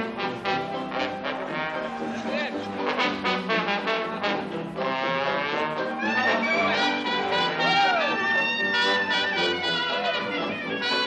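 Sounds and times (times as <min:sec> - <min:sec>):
banjo: 0:00.0 - 0:11.0
clarinet: 0:00.0 - 0:11.0
trombone: 0:00.0 - 0:11.0
tuba: 0:00.0 - 0:11.0.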